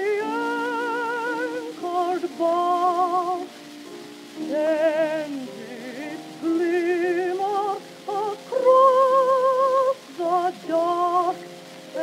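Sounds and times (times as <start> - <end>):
woman singing with vibrato: 0.0 - 3.6, 4.4 - 12.0
piano accompaniment: 0.0 - 12.0
record surface hiss: 0.0 - 12.0.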